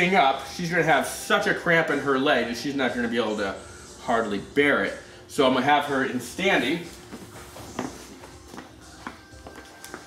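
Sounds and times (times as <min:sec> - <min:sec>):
faint background music: 0:00.0 - 0:10.0
soft footsteps and shuffles: 0:06.4 - 0:10.0.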